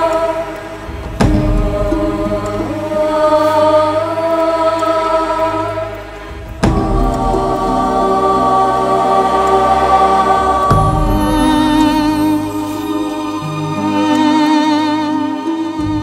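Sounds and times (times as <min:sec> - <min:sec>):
choir-like film score: 0:00.0 - 0:16.0.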